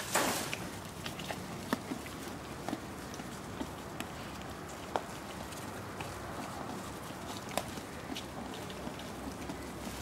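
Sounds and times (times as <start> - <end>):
leaves rustling: 0.0 - 0.9
moose chewing leaves clicks: 0.1 - 10.0.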